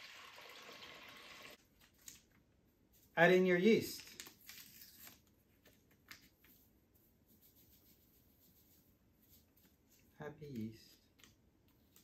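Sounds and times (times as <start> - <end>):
packet rustling and tearing: 3.8 - 6.6.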